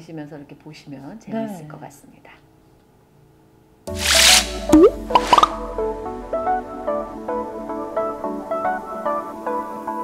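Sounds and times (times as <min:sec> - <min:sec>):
whoosh: 0:03.9 - 0:05.6
quick plops: 0:04.0 - 0:05.6
bubbly pop: 0:04.7 - 0:05.6.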